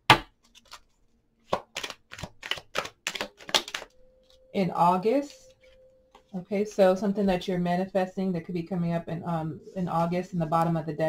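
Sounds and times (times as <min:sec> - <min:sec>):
cards being shuffled: 0:00.4 - 0:04.4.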